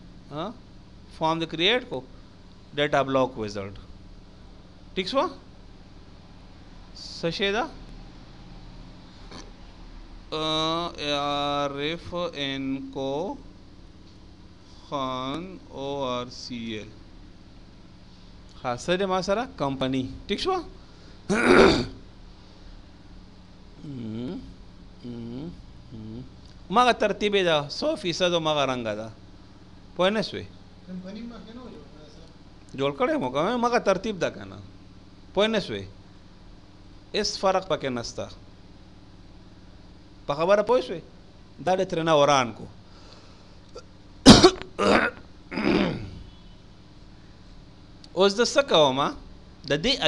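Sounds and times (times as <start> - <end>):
man clearing throat: 21.3 - 22.0, 43.7 - 46.3.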